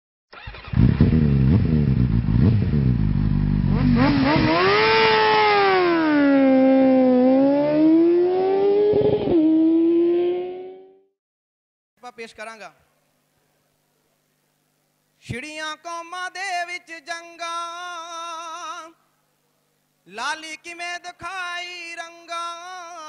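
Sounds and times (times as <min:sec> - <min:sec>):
engine revving: 0:00.4 - 0:11.1.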